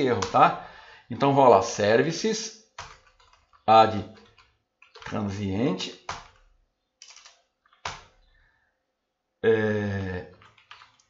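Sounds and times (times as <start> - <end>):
keyboard typing: 2.7 - 8.4, 10.0 - 11.0.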